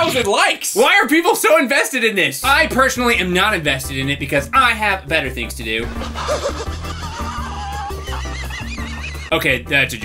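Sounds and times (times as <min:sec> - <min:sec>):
background music with bass line: 0:02.4 - 0:10.0.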